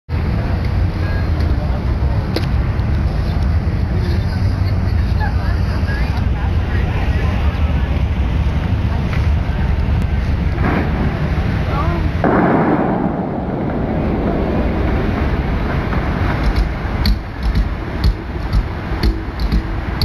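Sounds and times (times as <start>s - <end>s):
wind buffeting microphone: 0.1s - 20.0s
crowd chatter: 0.2s - 18.5s.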